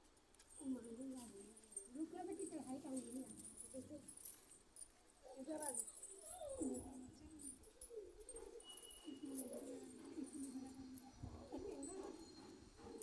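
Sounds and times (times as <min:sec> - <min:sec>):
low cooing bird calls: 0:06.4 - 0:13.0.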